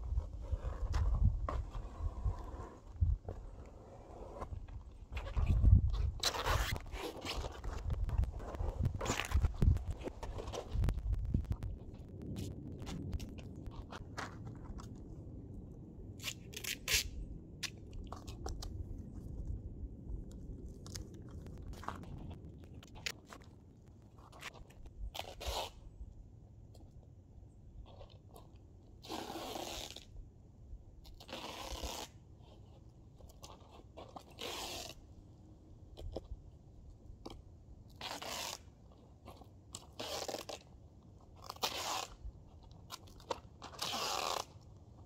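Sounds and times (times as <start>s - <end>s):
duct tape ripping off roll: 16.2s - 18.6s, 25.1s - 25.8s, 29.0s - 30.1s, 31.0s - 32.2s, 34.2s - 35.0s, 38.0s - 38.7s, 39.8s - 40.7s, 41.4s - 42.2s, 42.9s - 44.7s.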